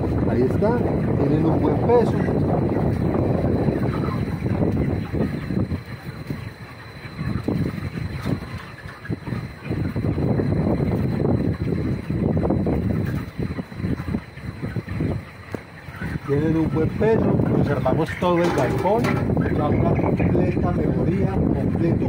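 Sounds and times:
wind buffeting microphone: 0.0s - 15.3s, 15.9s - 22.0s.

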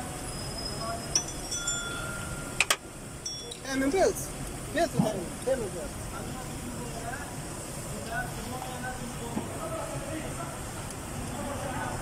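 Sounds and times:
low workshop noise: 0.0s - 12.0s
indistinct talking: 0.6s - 12.0s.

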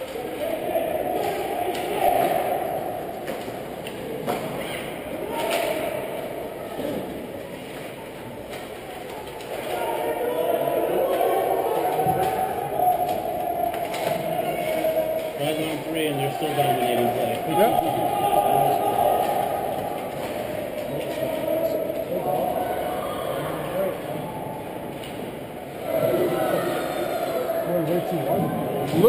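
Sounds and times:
echoing murmur of voices: 0.0s - 29.0s.

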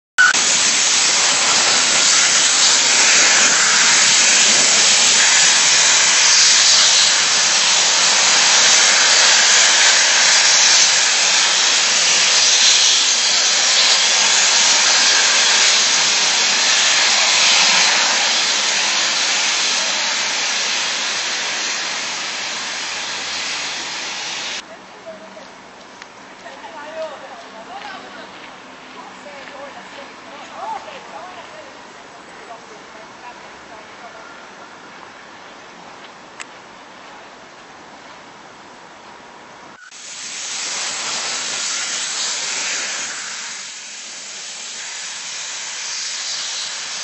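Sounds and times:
steam locomotive hissing steam: 0.2s - 24.6s, 39.8s - 47.0s.

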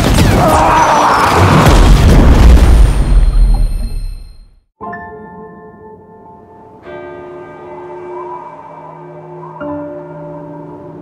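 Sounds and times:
din of battle: 0.0s - 3.8s
deep explosion boom: 1.4s - 3.8s.

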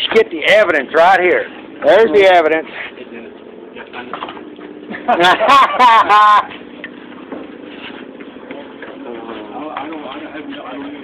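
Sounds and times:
low background murmur: 1.4s - 11.0s
person laughing loudly: 4.9s - 6.6s.

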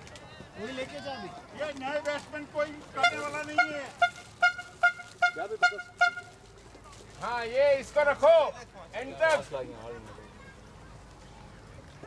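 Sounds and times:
voices talking outdoors: 0.0s - 12.0s.

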